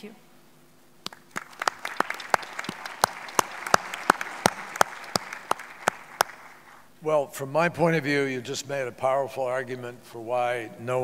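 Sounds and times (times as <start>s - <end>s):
audience applauding: 1.0s - 6.9s.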